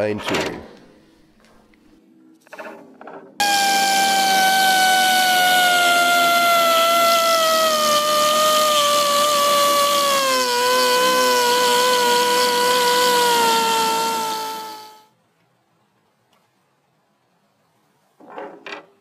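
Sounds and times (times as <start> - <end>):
rotary grinder whining on steel: 3.4 - 15.1.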